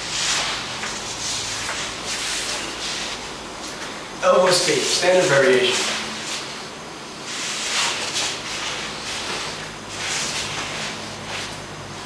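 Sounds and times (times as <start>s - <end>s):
fabric rustling on a mat: 7.3s - 11.6s.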